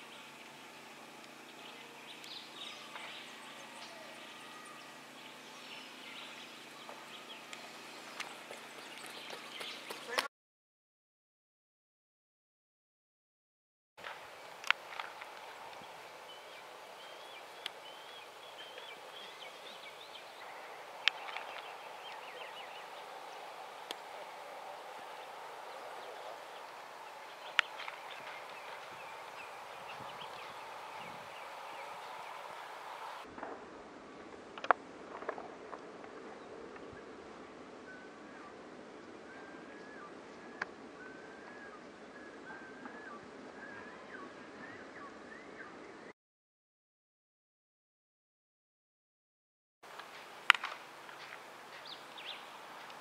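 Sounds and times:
steady hiss: 14.0s - 33.3s, 49.9s - 53.0s
bat hitting ball crack: 50.5s - 51.4s.

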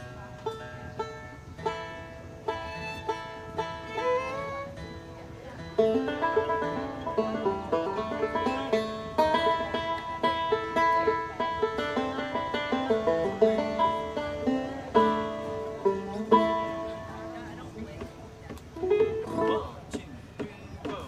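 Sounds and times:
bluegrass band fiddle tune: 0.0s - 21.0s
plucked banjo notes: 0.0s - 21.0s.

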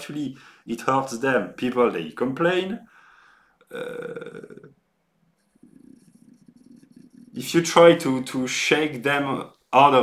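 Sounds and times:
faint low noise: 0.0s - 10.0s
man saying uh: 3.7s - 4.7s, 7.1s - 10.0s.

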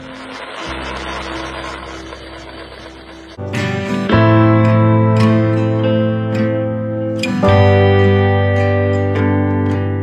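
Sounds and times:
steady machine hum: 0.0s - 3.4s
rushing grinding sawdust noise: 0.0s - 3.9s.

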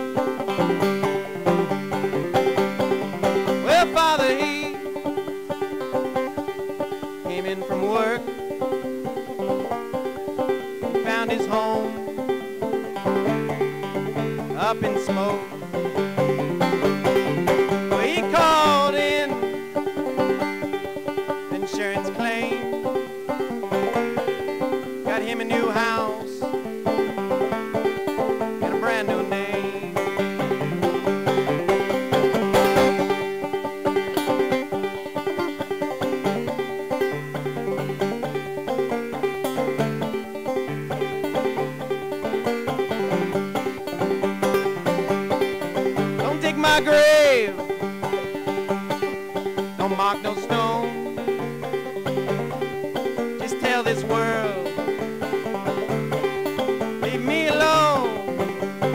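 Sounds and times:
banjo picking: 0.0s - 58.9s.

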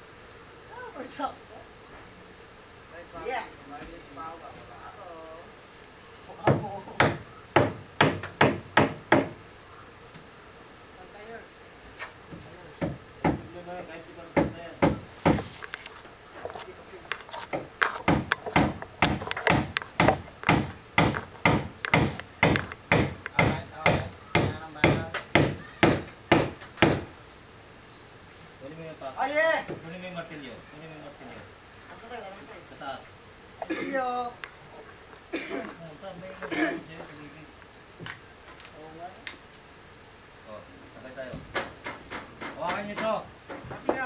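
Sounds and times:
hammer striking wood: 6.4s - 9.4s, 12.8s - 13.5s, 14.4s - 15.5s, 17.5s - 27.1s.

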